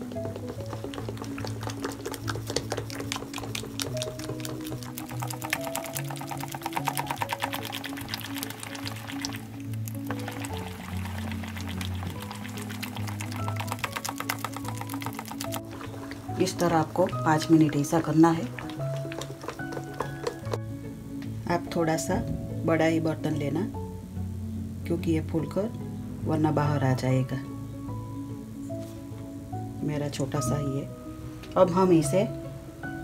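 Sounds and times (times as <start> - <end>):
hand slapping batter in bowl: 0.0 - 20.7
instrumental background music: 0.0 - 33.0.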